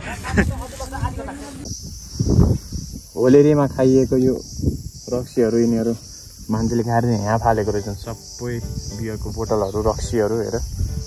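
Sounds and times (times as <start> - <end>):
high-pitched insect chorus: 0.1 - 11.0
man talking: 3.1 - 10.7.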